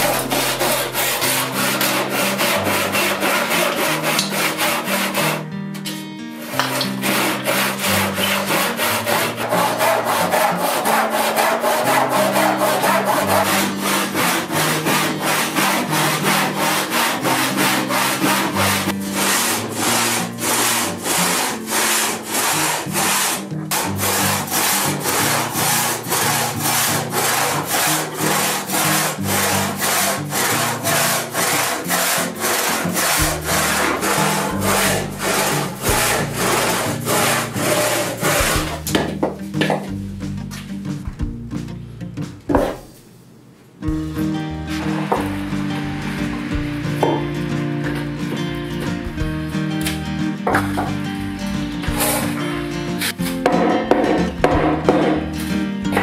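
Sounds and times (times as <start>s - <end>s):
handsaw cutting wood: 0.0s - 5.5s, 6.4s - 39.2s, 44.7s - 50.9s, 51.8s - 55.2s
background music: 0.0s - 42.9s, 43.8s - 56.0s.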